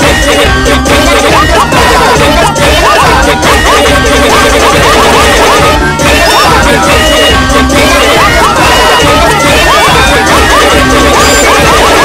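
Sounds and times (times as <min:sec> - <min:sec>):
cartoon music: 0:00.0 - 0:12.0
harsh noise: 0:00.0 - 0:12.0.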